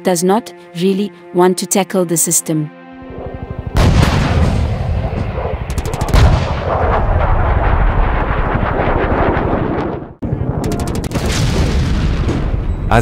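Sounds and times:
heavy boom: 0:03.7 - 0:13.0
automatic gunfire: 0:05.7 - 0:06.6, 0:10.6 - 0:11.4.

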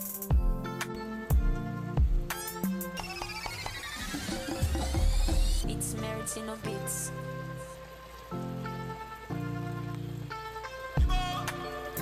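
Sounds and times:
background music chords: 0:00.0 - 0:12.0.

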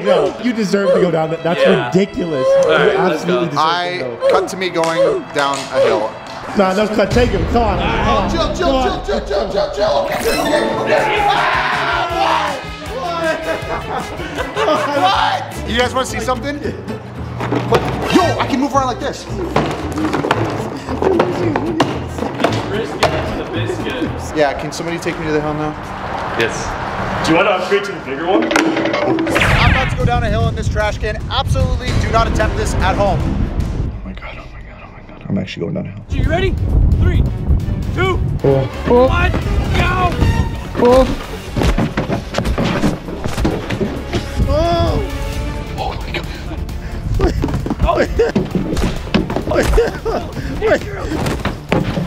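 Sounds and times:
background music: 0:00.0 - 0:52.0.

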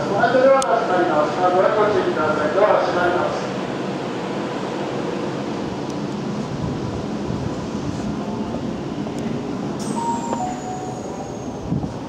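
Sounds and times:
train running equipment: 0:05.8 - 0:12.0
platform ambience: 0:09.8 - 0:11.7.

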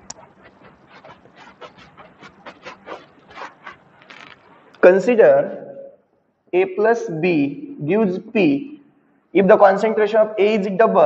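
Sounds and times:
eraser swishing on whiteboard: 0:00.0 - 0:04.6.

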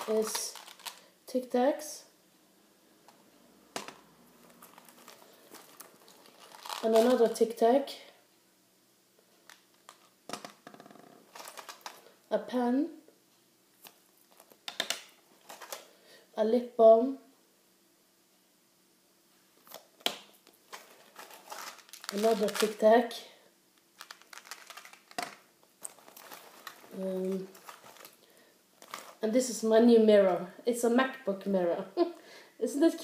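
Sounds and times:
hand rummaging in pouch: 0:00.0 - 0:01.0, 0:03.8 - 0:07.2, 0:11.3 - 0:12.1, 0:15.4 - 0:15.9, 0:20.7 - 0:22.8, 0:24.0 - 0:28.2, 0:28.8 - 0:29.2.

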